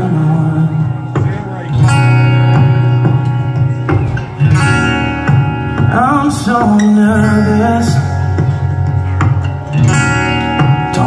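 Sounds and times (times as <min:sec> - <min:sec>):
acoustic guitar strummed chords: 0:00.0 - 0:11.0.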